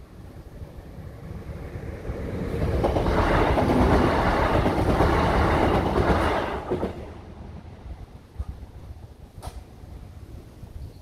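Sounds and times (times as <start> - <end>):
train passing over level crossing: 0.0 - 10.2.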